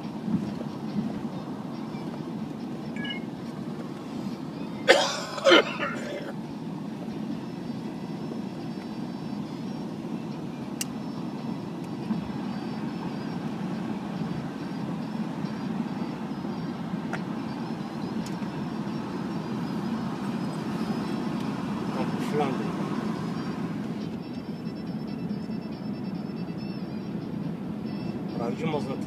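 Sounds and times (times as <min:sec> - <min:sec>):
car road and engine noise: 0:00.0 - 0:29.0.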